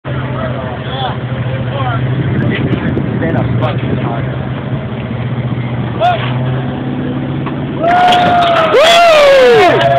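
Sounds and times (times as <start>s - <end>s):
engine low drone: 0.0s - 9.9s
people talking: 0.1s - 4.5s.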